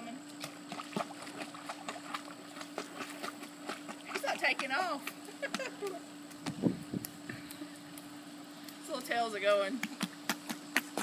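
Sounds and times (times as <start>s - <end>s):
dog paddling water splashing: 0.4s - 5.0s.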